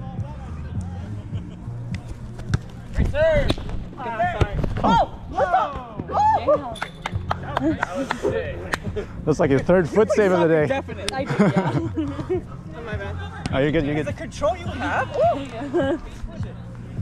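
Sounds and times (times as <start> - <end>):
background music with bass line: 0.0 - 17.0.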